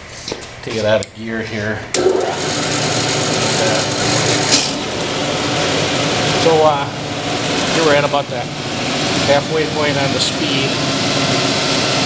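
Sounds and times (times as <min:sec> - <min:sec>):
metal lathe running: 0:01.9 - 0:12.0.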